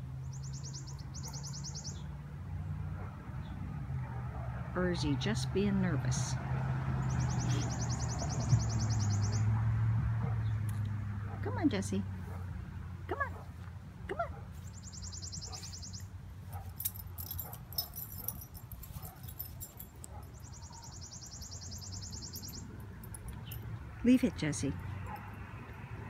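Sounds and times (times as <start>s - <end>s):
dog yipping: 15.3s - 21.0s.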